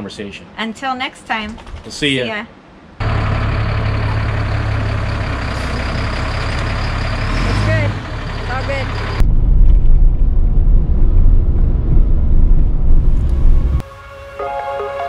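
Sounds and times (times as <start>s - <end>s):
wind and road noise: 0.1s - 13.8s
vehicle engine running: 3.0s - 13.8s.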